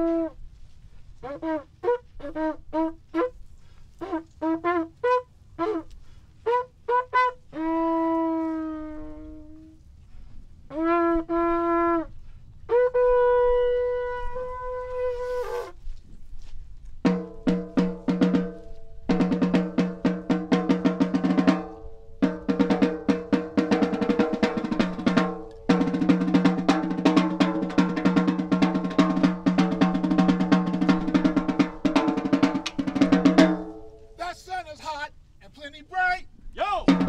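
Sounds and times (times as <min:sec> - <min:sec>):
animal horn blown: 0:00.0 - 0:00.4, 0:01.2 - 0:03.4, 0:04.0 - 0:09.8, 0:10.7 - 0:15.8, 0:23.6 - 0:34.2
drum rolls with sticks: 0:17.0 - 0:34.8, 0:36.6 - 0:37.0.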